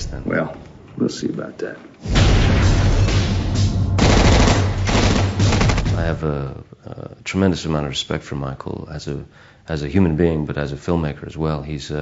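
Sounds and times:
rapid automatic gunfire: 0:04.0 - 0:06.0.

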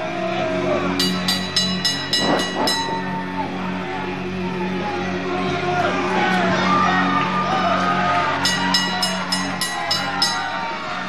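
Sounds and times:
ring bell struck rapidly: 0:01.0 - 0:03.4, 0:08.4 - 0:10.8.

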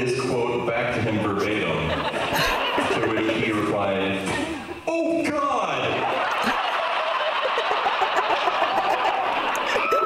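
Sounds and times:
audience laughter: 0:00.9 - 0:04.8, 0:05.8 - 0:10.0.

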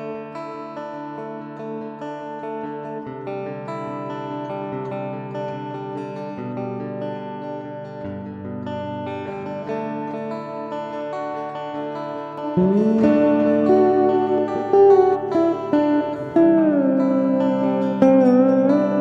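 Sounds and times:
electric slide guitar: 0:00.0 - 0:19.0.

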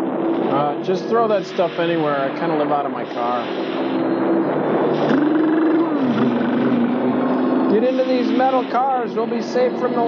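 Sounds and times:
storm roar with howling tone: 0:00.0 - 0:10.0.

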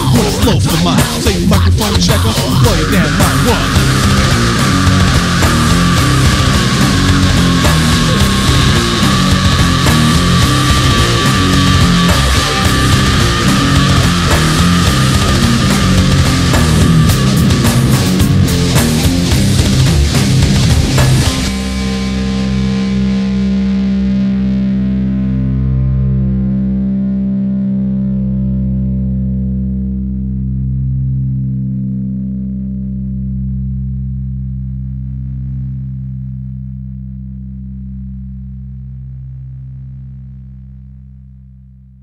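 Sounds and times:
heavy rap-metal band playing: 0:00.0 - 0:23.6
distorted electric guitar chord ringing: 0:00.0 - 0:41.2.

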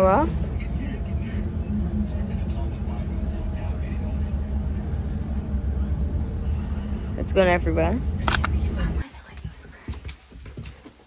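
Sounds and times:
faint hum: 0:00.0 - 0:10.0
train low rumble: 0:00.0 - 0:11.0.

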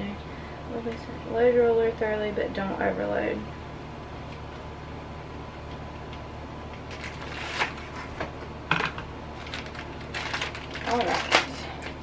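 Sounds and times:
low steady hum: 0:00.0 - 0:12.0
packaging crackling: 0:06.8 - 0:08.0, 0:09.3 - 0:12.0.

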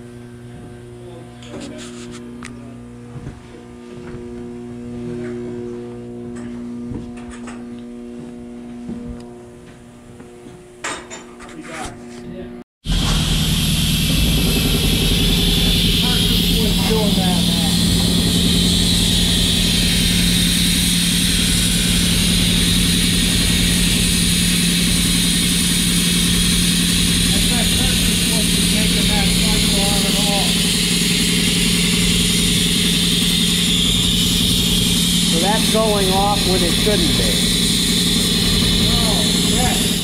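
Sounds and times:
air compressor running: 0:00.0 - 0:09.0, 0:12.8 - 0:40.0.

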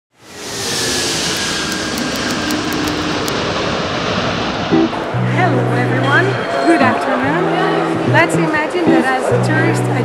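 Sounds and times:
jet engine whine falling: 0:00.1 - 0:06.5
jet airliner roar: 0:00.1 - 0:07.2.

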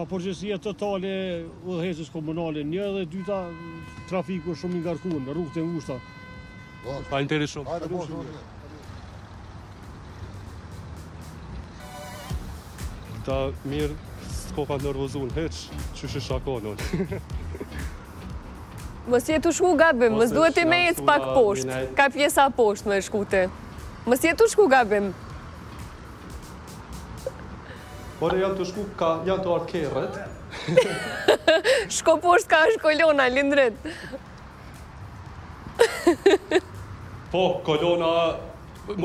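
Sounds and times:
road traffic rumble: 0:00.0 - 0:39.0
cars idling: 0:05.8 - 0:39.0.

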